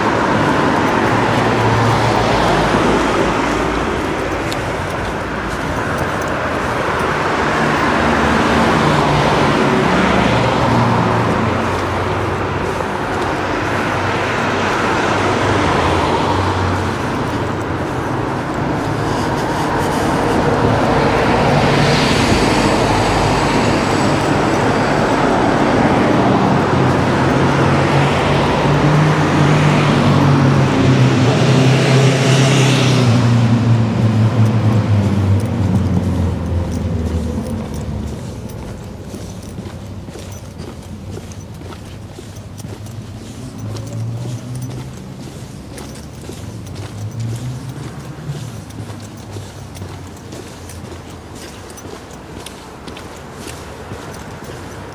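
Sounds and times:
quiet street background: 0.0s - 54.9s
vehicle engine passing by: 0.0s - 54.9s.

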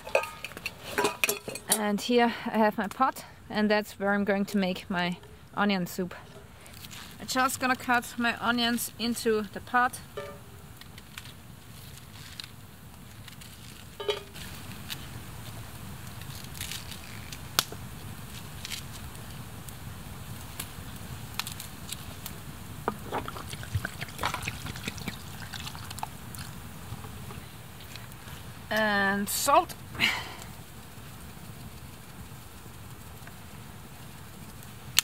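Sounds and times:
slices dropping into metal pot: 0.0s - 1.8s.

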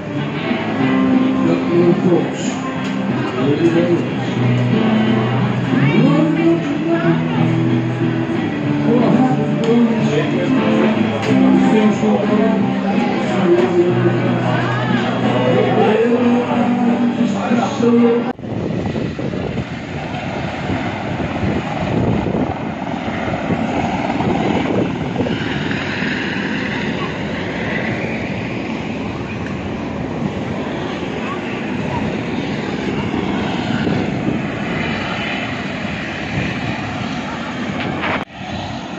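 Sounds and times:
loud engine drone: 0.0s - 38.9s.

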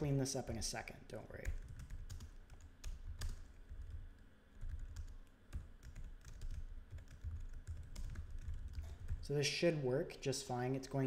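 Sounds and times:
typing on computer keyboard: 1.4s - 9.2s.

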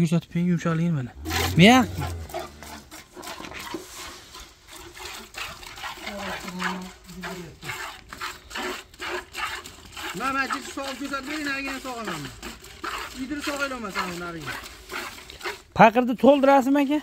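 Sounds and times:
milk squirting into metal pail: 1.2s - 16.3s.

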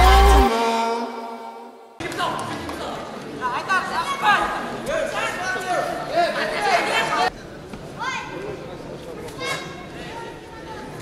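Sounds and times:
spectators chattering: 2.0s - 11.0s.

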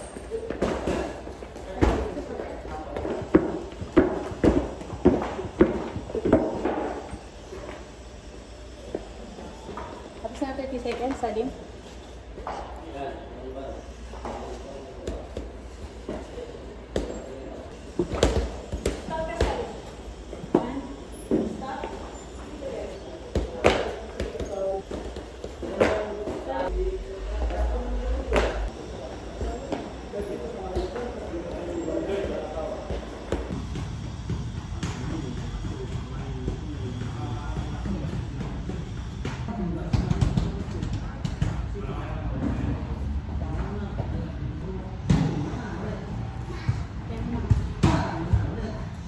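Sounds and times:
indistinct voices: 25.6s - 33.3s.

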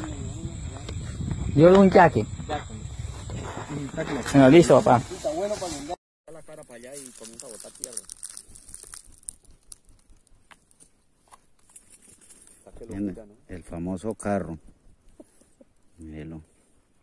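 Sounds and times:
people talking: 1.5s - 2.8s, 3.6s - 8.0s
faint clicks and crackles: 6.8s - 13.0s.

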